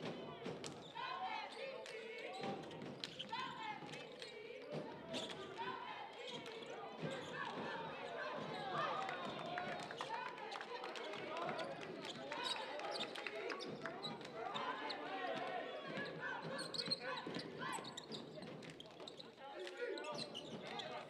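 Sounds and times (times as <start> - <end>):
sneakers squeaking: 2.2 - 5.6, 7.0 - 7.7, 15.7 - 21.0.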